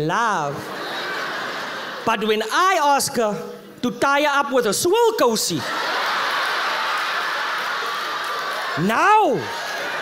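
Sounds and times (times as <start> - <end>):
audience laughing: 0.5 - 2.5, 5.6 - 10.0.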